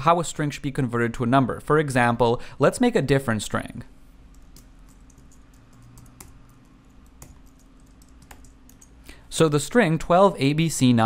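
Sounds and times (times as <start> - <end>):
keyboard keystrokes: 4.3 - 9.0.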